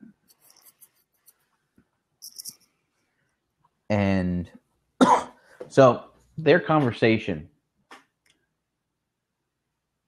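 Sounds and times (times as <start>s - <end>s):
faint scratching and rustling: 0.1s - 3.2s.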